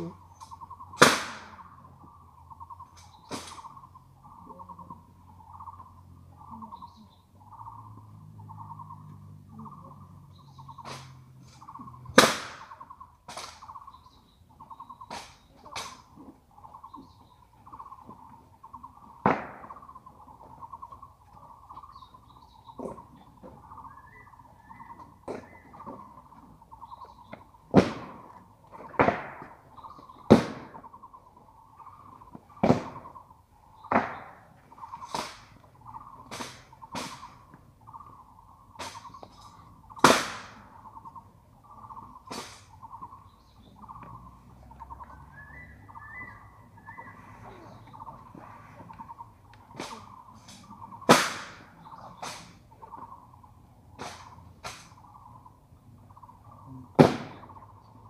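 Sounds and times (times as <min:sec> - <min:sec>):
steady pulsing call: 0:00.0 - 0:27.7, 0:29.6 - 0:58.0.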